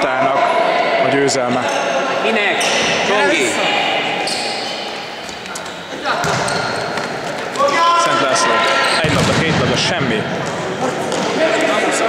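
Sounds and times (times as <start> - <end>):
players calling out: 0.0 - 12.0
ball thudding on court floor: 6.2 - 7.1
loud shout: 7.6 - 9.0.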